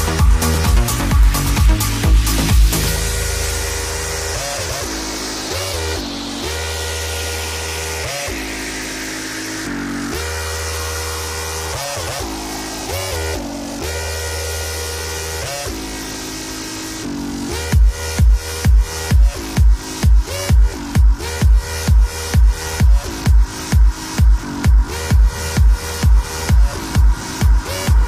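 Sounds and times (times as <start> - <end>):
electronic dance music synth chords: 0.0 - 28.0.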